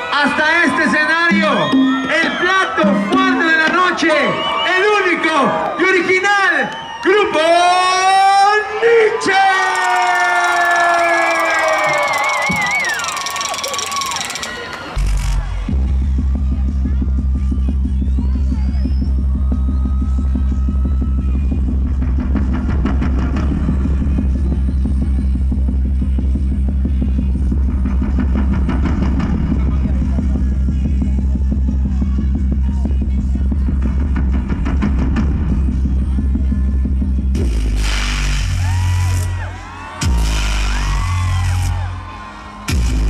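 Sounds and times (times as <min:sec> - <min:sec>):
crowd cheering: 0:00.0 - 0:33.0, 0:33.6 - 0:43.0
announcer shouting over pa: 0:00.1 - 0:11.7
loud low drone from speakers: 0:14.7 - 0:43.0.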